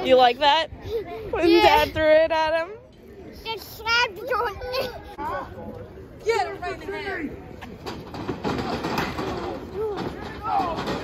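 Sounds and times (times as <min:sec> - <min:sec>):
crowd and outdoor noise: 0:00.0 - 0:11.0
indistinct voices nearby: 0:00.0 - 0:11.0.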